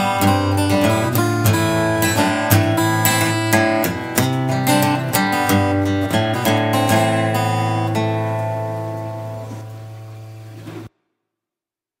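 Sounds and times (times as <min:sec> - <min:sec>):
acoustic guitar chord ringing: 0:00.0 - 0:10.9.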